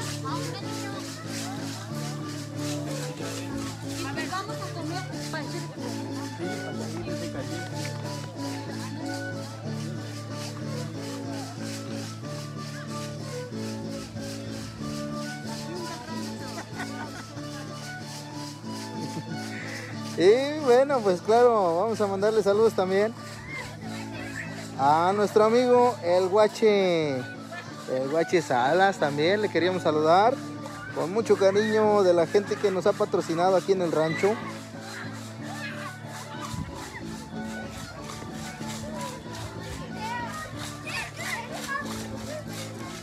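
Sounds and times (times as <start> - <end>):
crowd voices: 0.0 - 43.0.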